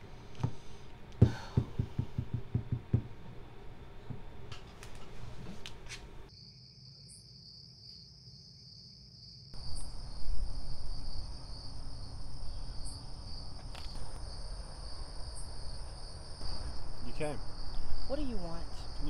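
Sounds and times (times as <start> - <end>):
crickets chirring: 6.3 - 19.0
high insect trill: 6.3 - 19.0
low outdoor rumble: 9.6 - 19.0.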